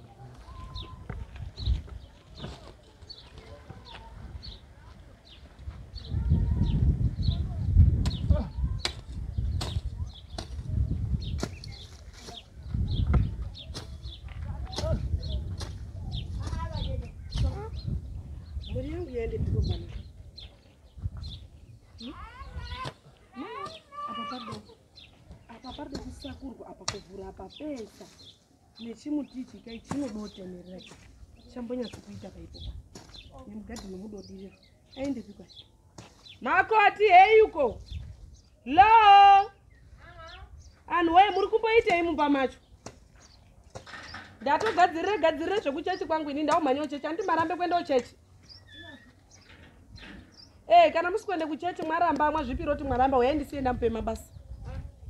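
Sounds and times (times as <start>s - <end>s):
birds chirping: 0.0s - 55.0s
whistled bird notes: 48.5s - 49.5s.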